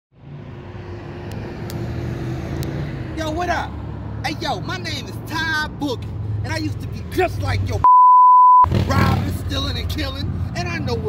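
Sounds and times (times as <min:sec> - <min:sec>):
street traffic rumble: 0:00.1 - 0:07.9, 0:08.6 - 0:11.0.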